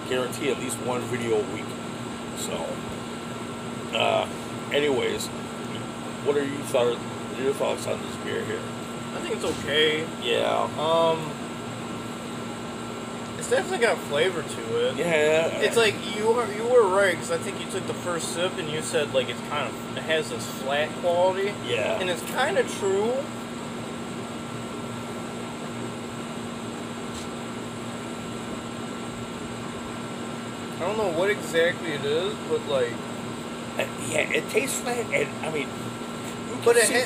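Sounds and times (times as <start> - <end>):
steady machine hum: 0.0 - 37.0.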